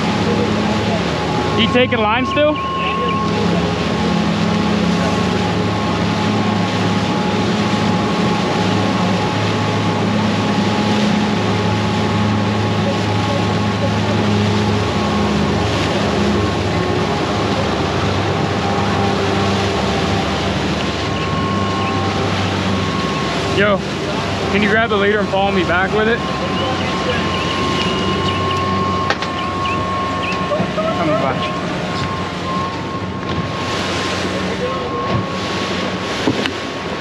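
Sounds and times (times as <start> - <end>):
outboard motors droning: 0.0 - 37.0
wake water rushing: 0.0 - 37.0
wind: 0.0 - 37.0.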